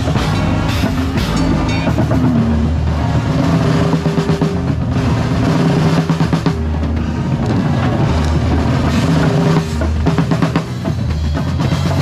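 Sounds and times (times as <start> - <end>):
sustained low chords: 0.0 - 10.2
drums and percussion: 0.0 - 12.0.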